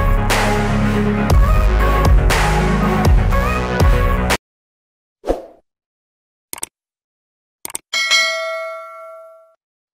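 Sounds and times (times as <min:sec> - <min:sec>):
quick clicks: 0:06.5 - 0:06.7, 0:07.6 - 0:07.9
bright bell ding: 0:08.0 - 0:09.6.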